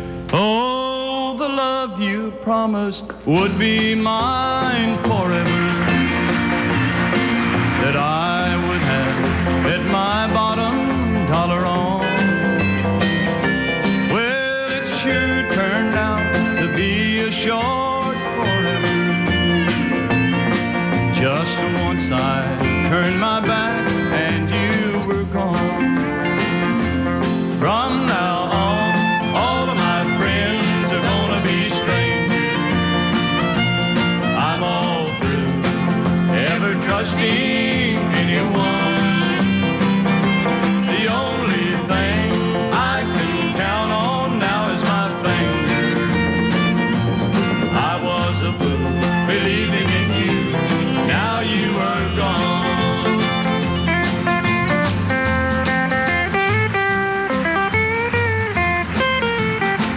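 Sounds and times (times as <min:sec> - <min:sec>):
country band with guitars: 0:00.0 - 0:59.9
man singing: 0:00.2 - 0:06.9, 0:07.6 - 0:12.8, 0:13.8 - 0:20.4, 0:21.0 - 0:26.8, 0:27.5 - 0:39.8, 0:40.6 - 0:53.9.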